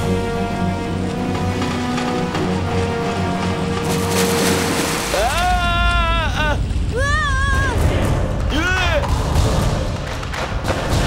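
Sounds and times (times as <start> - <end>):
low rumble: 2.4 - 11.0
character's long rising yell: 5.2 - 7.8.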